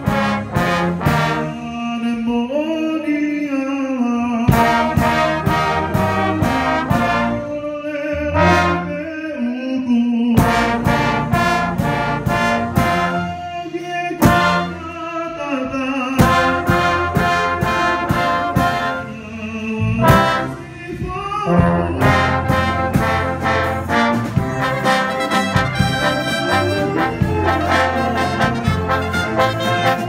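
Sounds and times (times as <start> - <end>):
brass band playing: 0.0 - 2.1, 4.5 - 9.4, 10.4 - 15.4, 16.2 - 20.8, 21.4 - 30.0.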